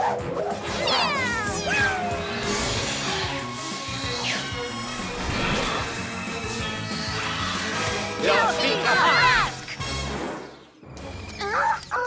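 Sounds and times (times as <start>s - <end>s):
background music: 0.0s - 12.0s
cartoon cat meowing: 0.7s - 2.3s.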